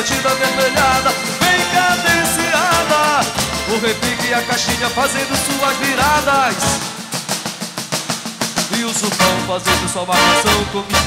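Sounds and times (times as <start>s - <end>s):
people singing: 0.0s - 7.2s, 8.8s - 11.0s
fast snare drum run: 0.0s - 11.0s.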